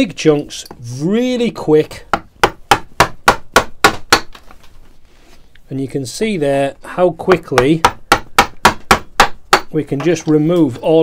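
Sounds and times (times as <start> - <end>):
mallet striking chisel: 2.1 - 4.3, 7.5 - 10.3.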